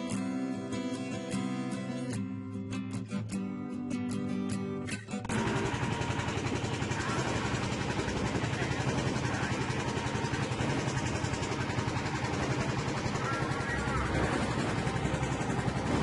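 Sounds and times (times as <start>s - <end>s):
strummed acoustic guitar: 0.0s - 16.0s
boat engine running: 5.3s - 16.0s
water rushing along hull: 5.3s - 16.0s.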